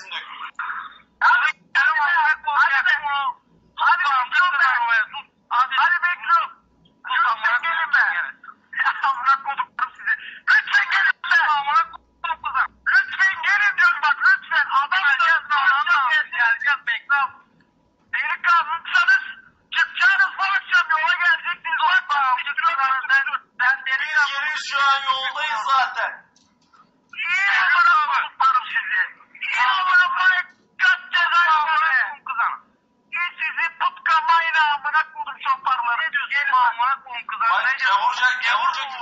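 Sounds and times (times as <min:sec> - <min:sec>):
voices through telephone speaker: 0:00.0 - 0:17.5, 0:18.1 - 0:26.4, 0:27.1 - 0:39.0.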